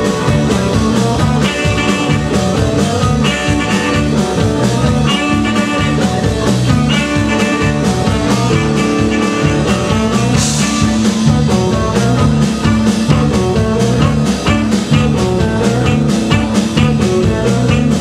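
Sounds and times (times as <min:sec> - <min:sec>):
bass notes: 0:00.0 - 0:18.0
drum kit steady beat: 0:00.0 - 0:18.0
electric guitar: 0:00.0 - 0:18.0.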